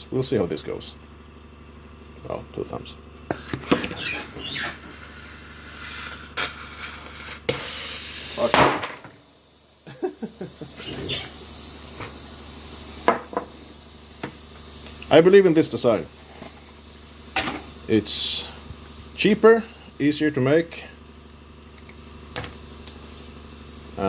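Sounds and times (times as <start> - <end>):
gas rush: 3.6 - 23.9
rubber squeaking and creaking: 3.7 - 5.0, 10.8 - 11.3.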